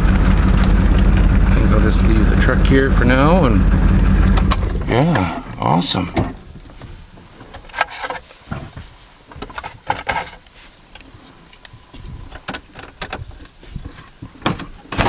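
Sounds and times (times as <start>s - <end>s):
clicks and rustles of handling: 6.5s - 15.0s.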